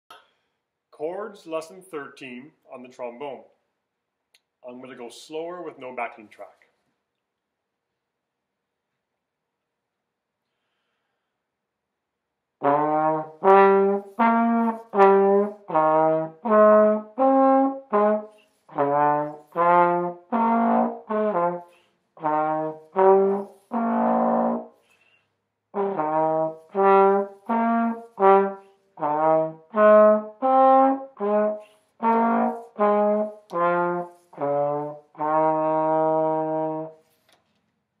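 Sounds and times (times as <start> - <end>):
trombone playing detached notes: 12.6 - 24.8, 25.7 - 37.0.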